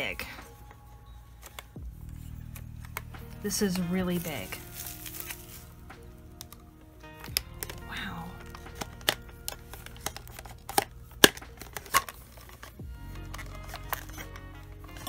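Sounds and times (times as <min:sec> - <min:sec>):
soft background music: 0:00.0 - 0:15.0
doll joints clicking: 0:06.4 - 0:15.0.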